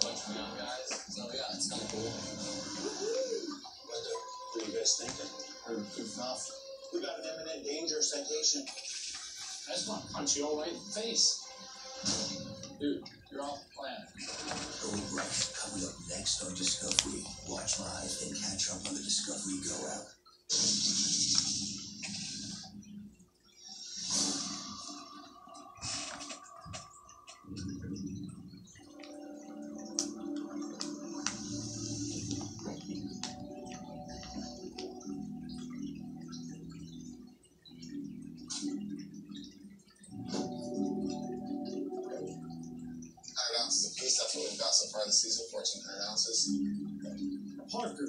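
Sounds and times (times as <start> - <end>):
television music: 0.0 - 48.0.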